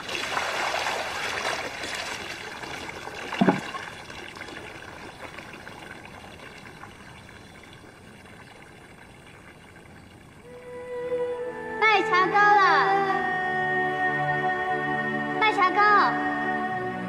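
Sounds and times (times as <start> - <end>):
water trickling: 0.0 - 10.8
soft music: 10.5 - 17.0.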